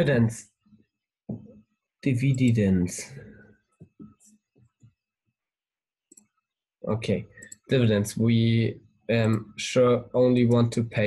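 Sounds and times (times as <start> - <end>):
person speaking: 2.0 - 3.3, 6.8 - 11.0.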